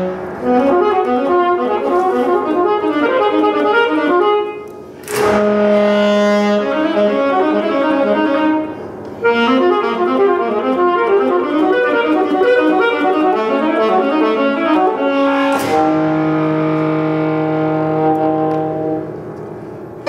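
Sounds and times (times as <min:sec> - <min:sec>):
grand piano: 0:00.0 - 0:20.0
saxophone: 0:00.0 - 0:20.0.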